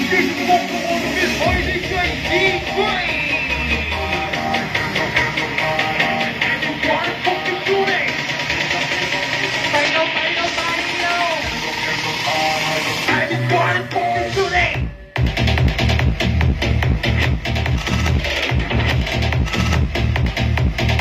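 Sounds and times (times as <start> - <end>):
dance music with sung vocals: 0.0 - 21.0
heavy bass: 0.0 - 21.0.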